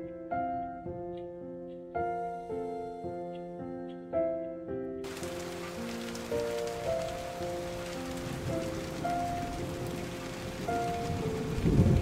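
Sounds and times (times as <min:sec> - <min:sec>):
slow held music notes: 0:00.0 - 0:04.8
rain falling on water: 0:05.0 - 0:12.0.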